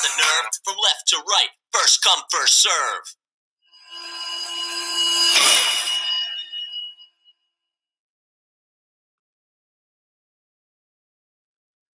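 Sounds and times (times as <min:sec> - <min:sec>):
shimmering high chord: 0:03.8 - 0:07.2.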